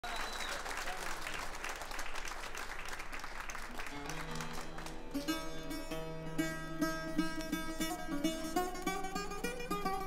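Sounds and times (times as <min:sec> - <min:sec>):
voices among clapping: 0:00.0 - 0:05.3
audience applauding: 0:00.0 - 0:05.5.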